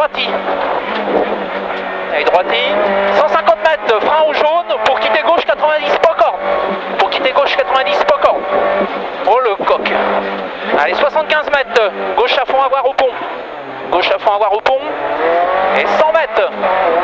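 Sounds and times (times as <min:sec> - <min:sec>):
car engine running hard: 0:00.0 - 0:17.0.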